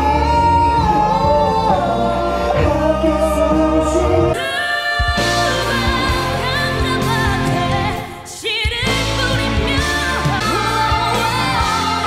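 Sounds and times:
men singing into microphones: 0:00.0 - 0:06.4
female vocal group singing: 0:00.0 - 0:12.0
pop accompaniment music: 0:00.0 - 0:12.0.

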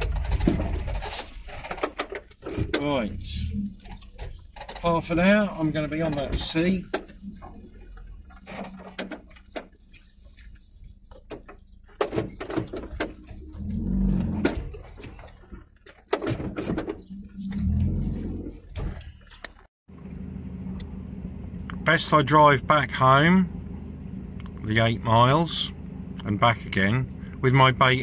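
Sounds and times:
vehicle engine running low: 0:00.0 - 0:15.8, 0:16.8 - 0:28.0
vehicle body rattling over bumps: 0:00.0 - 0:19.7
steady cab hum: 0:00.0 - 0:28.0.

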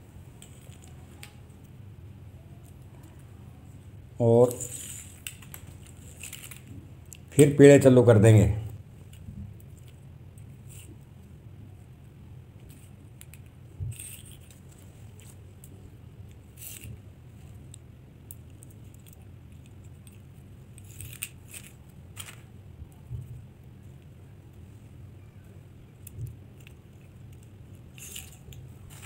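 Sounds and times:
low steady hum: 0:00.0 - 0:29.0
plastic beads clicking: 0:26.0 - 0:29.0.

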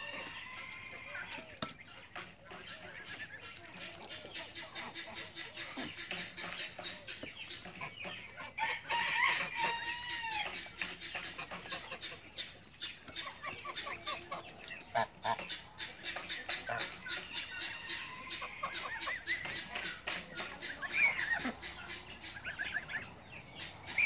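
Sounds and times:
drawn-out poultry call: 0:00.0 - 0:24.0
poultry clucking: 0:00.0 - 0:24.0.

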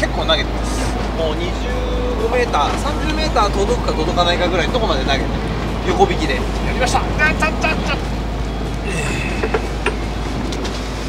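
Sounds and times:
boat engine rumbling: 0:00.0 - 0:11.0.

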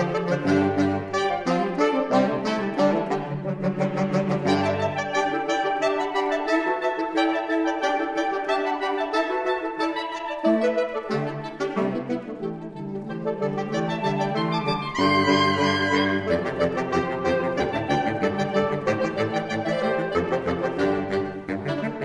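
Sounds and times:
saxophone quartet playing: 0:00.0 - 0:22.0.

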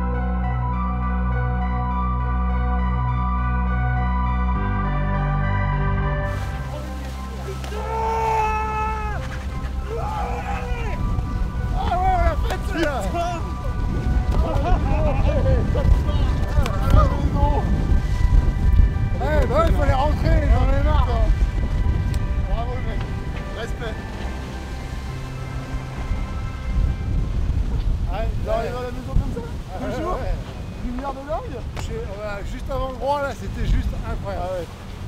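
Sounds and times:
background music: 0:00.0 - 0:35.0
wind buffeting microphone: 0:06.3 - 0:35.0
crew shouting and cheering: 0:07.4 - 0:13.6.

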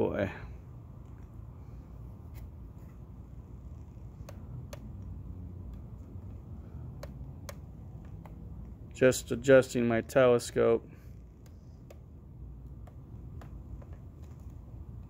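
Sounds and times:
low steady rumble: 0:00.0 - 0:15.0.

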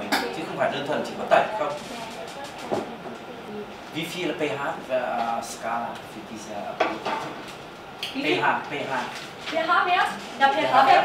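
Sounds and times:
faint indistinct voices: 0:00.0 - 0:04.0.

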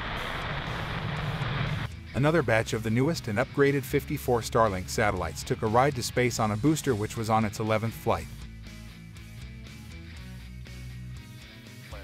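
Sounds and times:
distant rocket engine rumble: 0:00.0 - 0:01.9.

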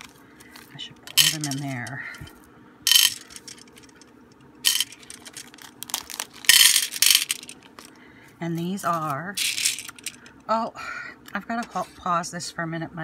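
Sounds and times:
beads clattering into plastic tray: 0:01.1 - 0:02.0, 0:02.9 - 0:04.0, 0:04.6 - 0:07.7, 0:09.0 - 0:10.2.

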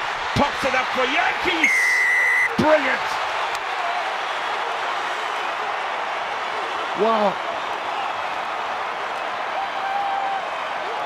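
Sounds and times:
stadium crowd cheering and applauding: 0:00.0 - 0:11.0.

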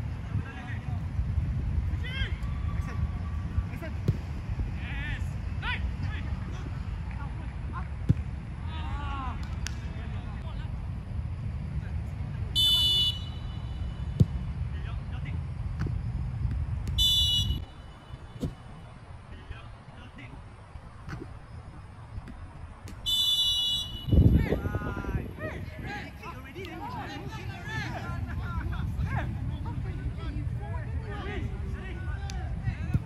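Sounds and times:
steady low rumble: 0:00.0 - 0:23.1, 0:23.9 - 0:33.0
players shouting calls: 0:12.5 - 0:14.2, 0:17.0 - 0:20.3, 0:23.0 - 0:28.9
referee's whistle blast: 0:12.6 - 0:14.1, 0:17.0 - 0:18.3, 0:23.0 - 0:24.4.

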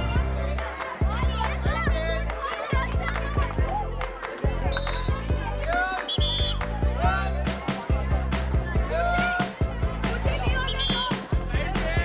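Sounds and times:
music with heavy bass beat: 0:04.5 - 0:12.0.

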